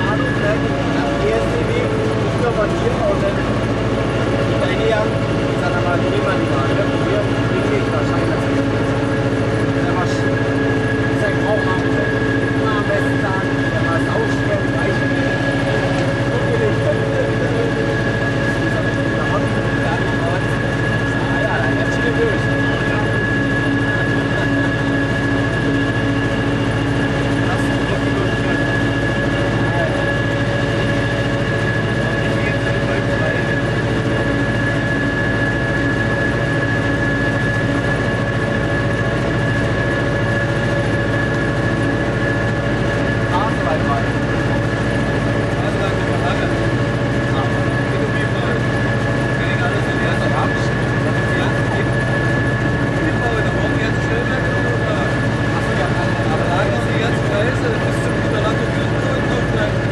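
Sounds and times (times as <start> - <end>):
diesel engine droning: 0.0 - 59.9
steady high whine: 0.0 - 59.9.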